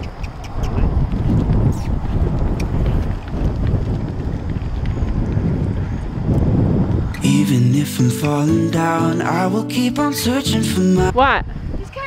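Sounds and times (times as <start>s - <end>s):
horse hoofbeats on sand: 0.0s - 6.5s
wind buffeting microphone: 0.0s - 7.6s, 10.5s - 12.0s.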